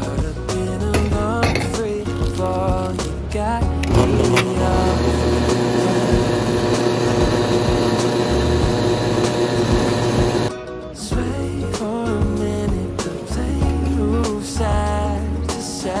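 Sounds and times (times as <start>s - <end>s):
background music: 0.0s - 16.0s
coffee grinder running: 3.8s - 10.5s.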